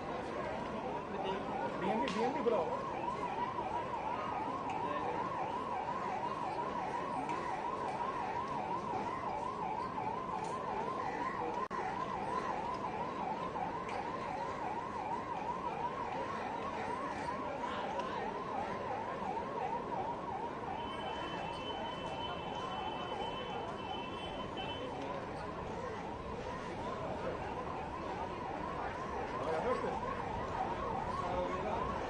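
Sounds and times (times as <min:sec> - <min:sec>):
large crowd noise: 0:00.0 - 0:32.0
siren yelping: 0:00.1 - 0:32.0.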